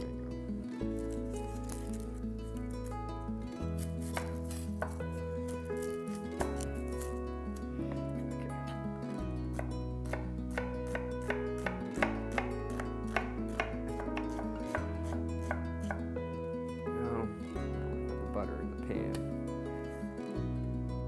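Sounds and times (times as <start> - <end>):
background music: 0.0 - 21.0
knife chopping on wooden board: 4.0 - 5.0, 9.5 - 16.0.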